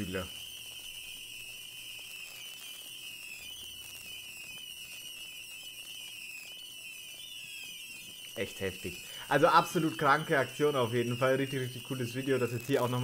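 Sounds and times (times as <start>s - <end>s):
faint hiss: 0.0s - 6.2s, 7.4s - 13.0s
fireworks high whistle: 0.0s - 13.0s.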